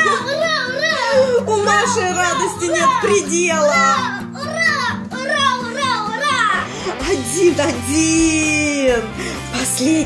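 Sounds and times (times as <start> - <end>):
children cheering: 0.0 - 6.8
background music: 0.0 - 10.0.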